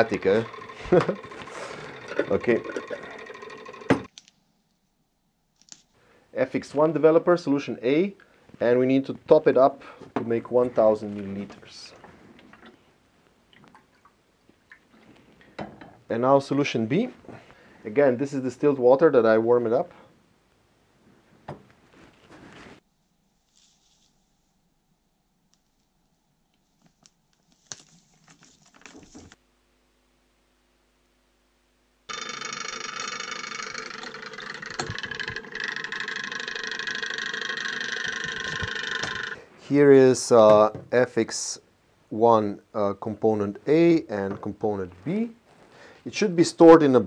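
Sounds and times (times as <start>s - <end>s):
stirrer motor whine: 0.0s - 4.1s, 32.1s - 39.4s
water dripping: 13.5s - 15.0s.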